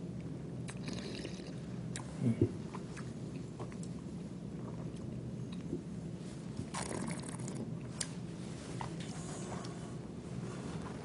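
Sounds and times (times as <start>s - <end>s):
steady low hum: 0.0s - 11.0s
person slurping wine: 6.7s - 7.7s.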